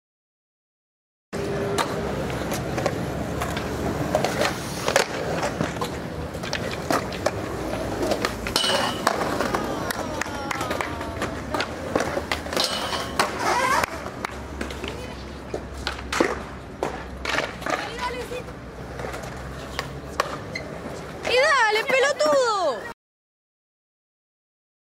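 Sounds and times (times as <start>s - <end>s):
skateboard trucks grinding metal: 1.4s - 14.7s
skateboard wheels rolling on concrete: 1.4s - 23.0s
people calling out: 9.0s - 12.0s.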